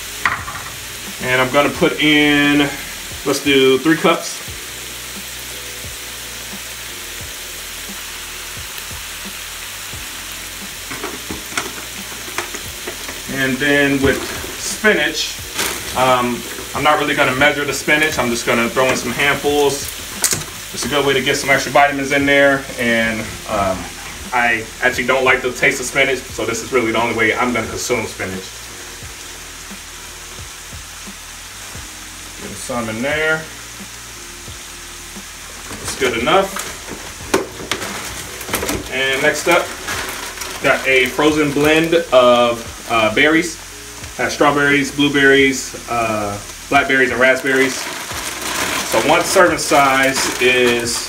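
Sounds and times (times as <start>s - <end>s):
meat sizzling in a pan: 0.0s - 51.0s.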